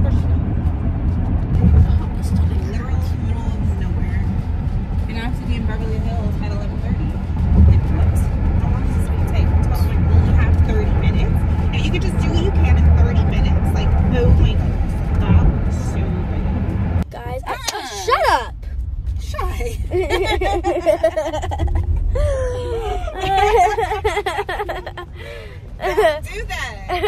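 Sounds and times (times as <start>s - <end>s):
car cabin road rumble: 0.0s - 27.0s.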